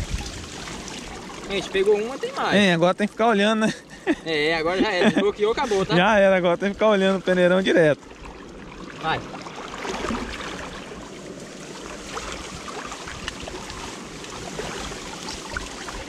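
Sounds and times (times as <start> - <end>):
water splashing and sloshing: 0.0 - 16.0.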